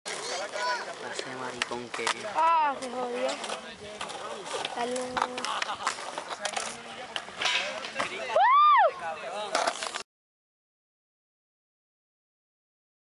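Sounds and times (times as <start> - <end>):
skateboard clacks and scraping: 0.1 - 8.3, 9.4 - 10.0
voices talking: 0.1 - 9.7.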